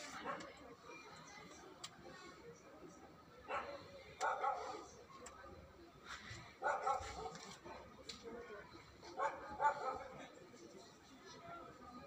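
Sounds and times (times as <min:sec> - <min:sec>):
dog barking: 0:03.5 - 0:04.8, 0:06.6 - 0:07.4, 0:09.2 - 0:10.1.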